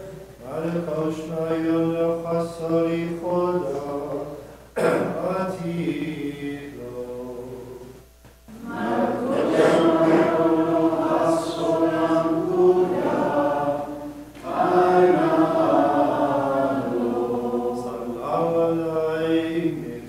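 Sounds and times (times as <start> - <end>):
liturgical chant: 0.0 - 20.0.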